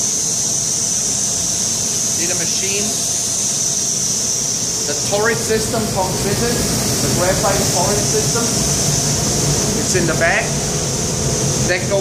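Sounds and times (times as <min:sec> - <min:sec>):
milling machine high-pitched hiss: 0:00.0 - 0:12.0
machine-shop noise: 0:02.0 - 0:12.0.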